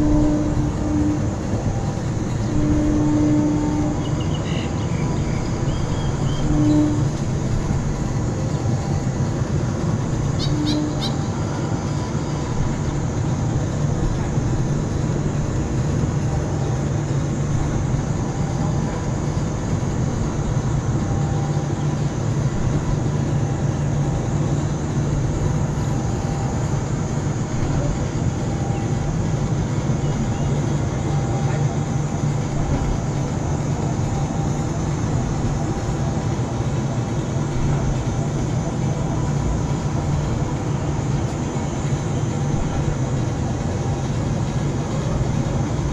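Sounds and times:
ride machinery humming: 0:00.0 - 0:45.9.

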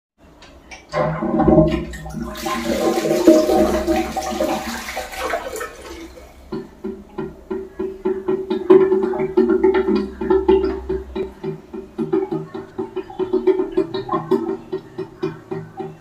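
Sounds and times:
toilet flush water rushing: 0:00.9 - 0:15.1
music with a steady beat: 0:06.4 - 0:16.0.

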